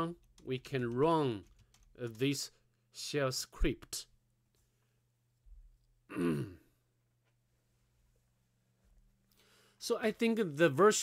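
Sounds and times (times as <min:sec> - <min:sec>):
faint electrical hum: 0:00.0 - 0:11.0
man clearing throat: 0:06.1 - 0:06.8.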